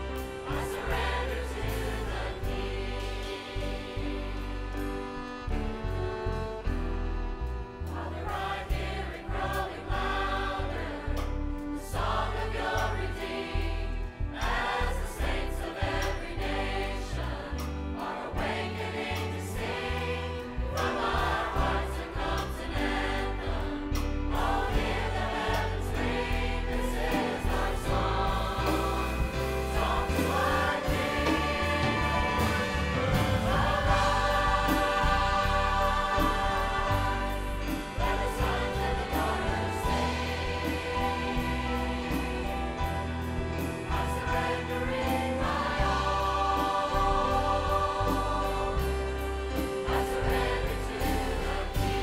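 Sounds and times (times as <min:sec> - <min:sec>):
choir singing gospel: 0:00.0 - 0:52.0
instrumental accompaniment with bass: 0:00.0 - 0:52.0.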